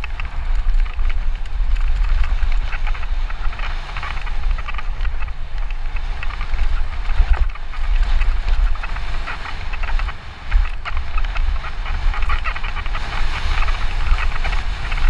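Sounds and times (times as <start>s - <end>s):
bike rattling: 0.0s - 15.0s
wind rumble on microphone: 0.0s - 15.0s.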